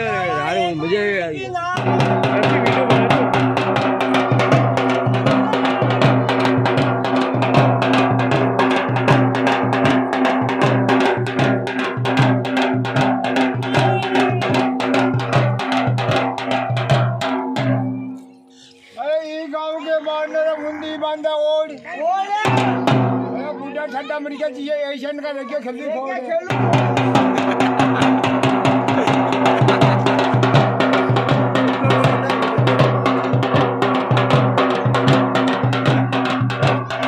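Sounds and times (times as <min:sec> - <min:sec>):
drum beaten in fast rhythm: 0:00.0 - 0:18.2, 0:22.1 - 0:25.5, 0:26.2 - 0:37.0.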